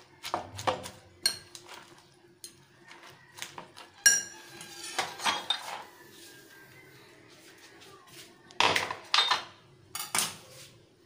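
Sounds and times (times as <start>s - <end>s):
metal fork clinking on glass bowl: 4.0s - 5.0s.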